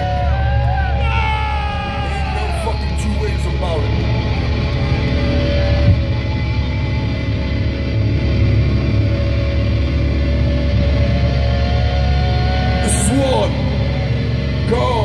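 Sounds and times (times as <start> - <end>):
electric guitar feedback: 0.0 - 15.0
low bass rumble: 0.0 - 15.0.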